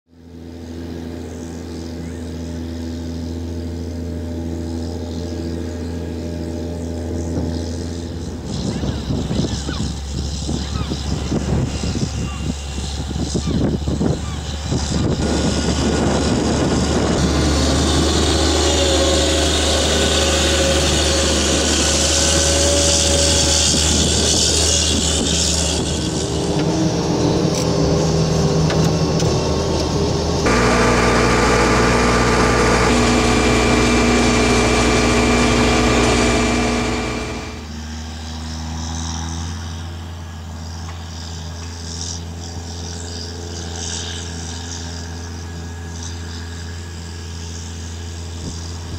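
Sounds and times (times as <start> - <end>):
diesel engine running under load: 0.2 - 48.9.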